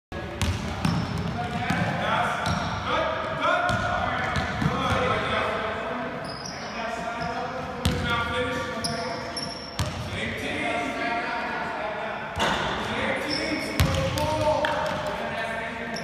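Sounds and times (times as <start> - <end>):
basketballs bouncing on hardwood floor: 0.4 - 2.7.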